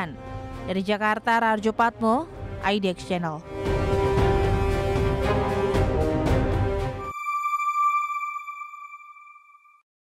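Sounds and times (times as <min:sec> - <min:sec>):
news outro music: 0:00.0 - 0:09.6
high ringing note: 0:07.0 - 0:09.8.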